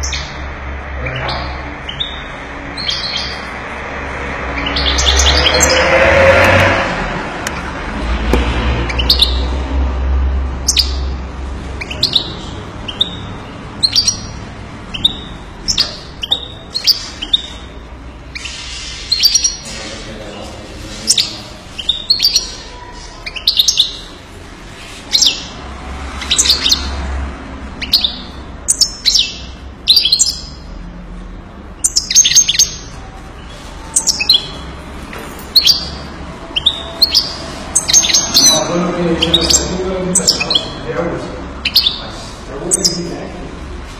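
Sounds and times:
goldfinch chirping: 0:00.0 - 0:00.4, 0:01.1 - 0:03.5, 0:04.5 - 0:05.8, 0:08.9 - 0:09.5, 0:10.6 - 0:11.2, 0:11.8 - 0:19.8, 0:21.0 - 0:24.1, 0:25.1 - 0:25.6, 0:26.2 - 0:27.0, 0:27.8 - 0:30.7, 0:31.8 - 0:34.7, 0:35.5 - 0:40.9, 0:41.6 - 0:42.1.

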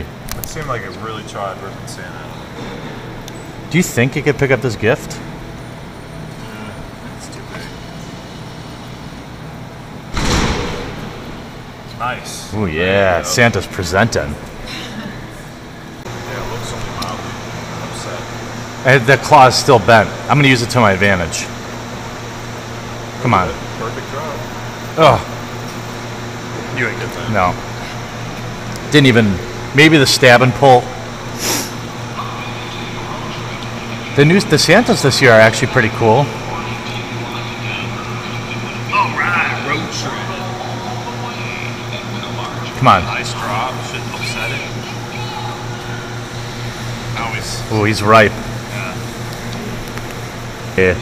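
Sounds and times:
arcade background din: 0:00.0 - 0:51.0
loud noisy burst: 0:10.1 - 0:11.8.

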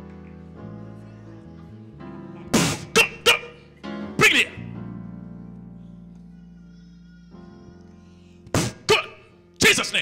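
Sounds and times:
sustained keyboard chords: 0:00.0 - 0:07.8
man shouting: 0:02.9 - 0:03.6, 0:04.2 - 0:04.6, 0:08.7 - 0:10.0.

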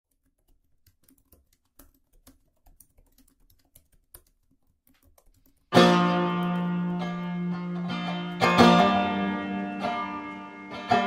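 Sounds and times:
plucked string music: 0:05.8 - 0:11.0.

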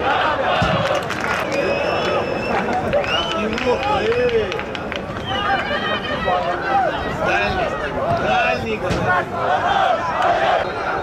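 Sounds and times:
murmur of small crowd: 0:00.0 - 0:11.0
players shouting: 0:00.0 - 0:11.0.

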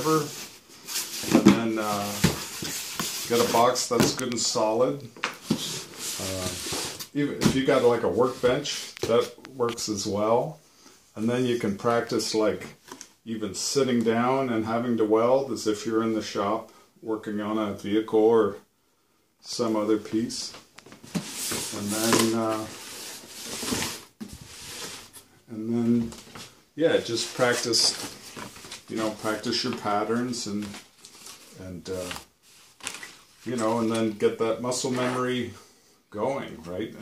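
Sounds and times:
cardboard box scraping over papers: 0:21.1 - 0:25.2.

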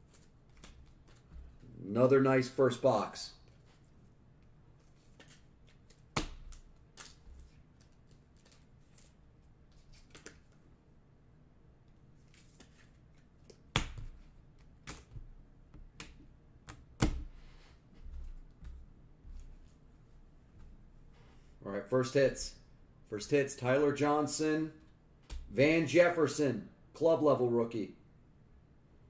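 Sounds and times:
cards tapping and clicking: 0:09.8 - 0:10.6, 0:12.3 - 0:17.3.

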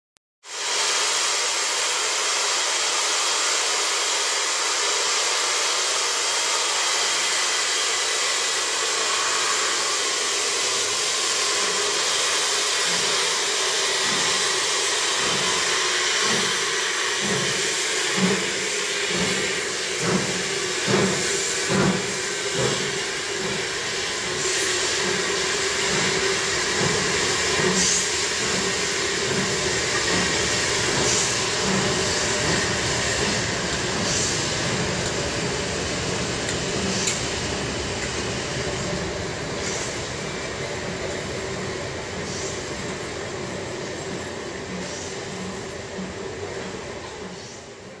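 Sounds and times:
steam hiss: 0:00.4 - 0:48.0
steam locomotive chuffing: 0:00.5 - 0:48.0
steady drone: 0:05.5 - 0:46.4.

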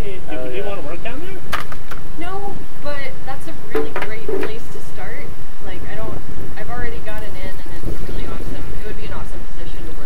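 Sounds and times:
people conversing: 0:00.0 - 0:10.0
wind buffeting microphone: 0:02.0 - 0:10.0.

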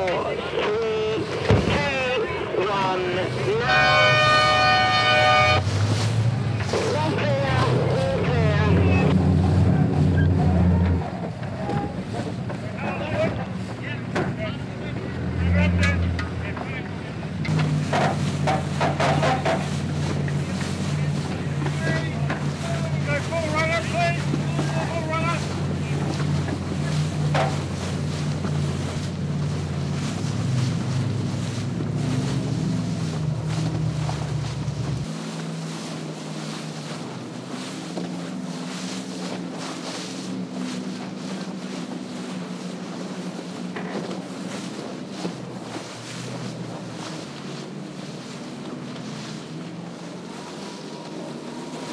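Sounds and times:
motorboat engine drone: 0:00.0 - 0:51.9
water noise: 0:00.0 - 0:51.9
wind: 0:00.0 - 0:51.9.

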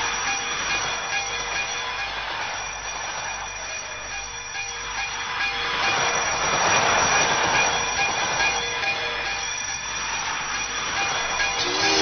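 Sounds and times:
electronic dance music: 0:11.6 - 0:12.0.

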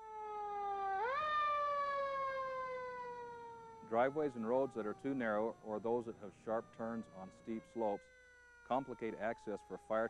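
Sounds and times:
fire engine siren wailing: 0:00.0 - 0:10.0.

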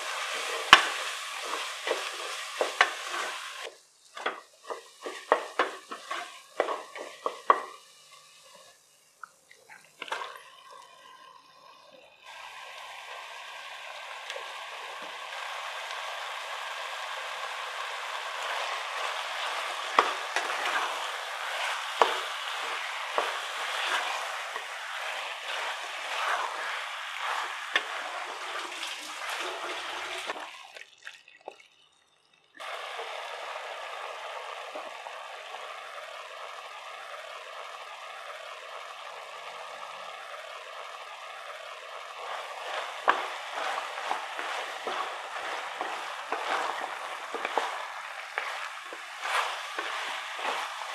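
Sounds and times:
spatula stirring and knocking pan: 0:00.0 - 0:08.2, 0:17.2 - 0:30.5, 0:42.2 - 0:50.9
meat sizzling in hot oil: 0:00.0 - 0:09.2, 0:12.3 - 0:30.8, 0:32.6 - 0:50.9.

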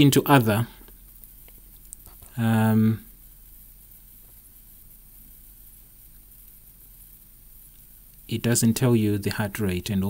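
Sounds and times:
faint steady hiss: 0:00.0 - 0:10.0.

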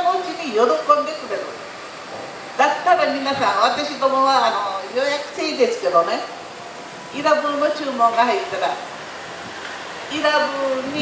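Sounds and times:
woman talking into a microphone: 0:00.0 - 0:01.6, 0:02.6 - 0:06.3, 0:07.2 - 0:08.8, 0:10.1 - 0:11.0
steady background hum: 0:00.0 - 0:11.0.

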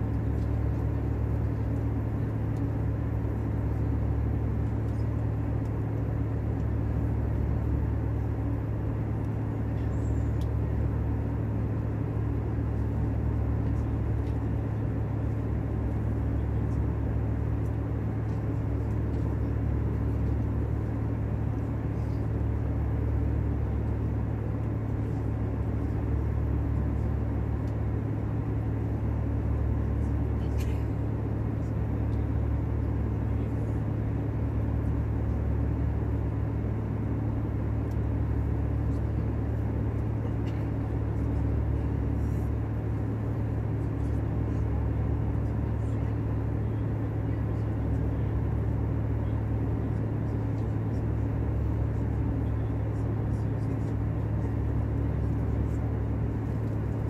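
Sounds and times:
airplane cabin engine drone: 0:00.0 - 0:57.0
constant hum: 0:00.0 - 0:57.0.

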